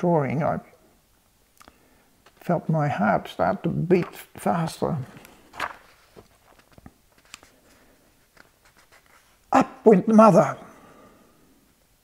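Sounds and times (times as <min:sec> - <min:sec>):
book page turning: 0:05.0 - 0:09.4.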